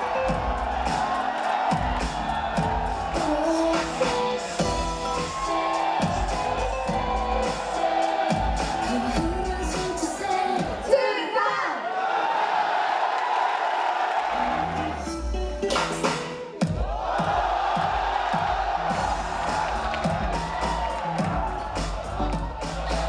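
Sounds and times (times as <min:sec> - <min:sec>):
pop music with bass beat: 0:00.0 - 0:11.0, 0:14.5 - 0:23.0
audience cheering and laughing: 0:00.0 - 0:15.1, 0:16.8 - 0:23.0.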